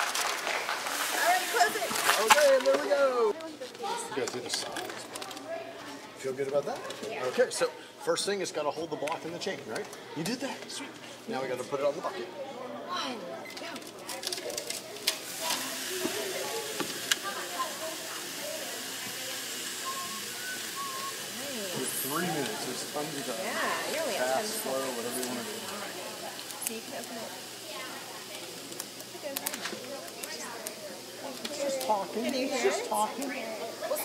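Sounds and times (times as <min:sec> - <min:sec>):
sand pouring into bucket: 0:00.0 - 0:03.3, 0:15.2 - 0:27.4
voices chattering: 0:00.9 - 0:34.0.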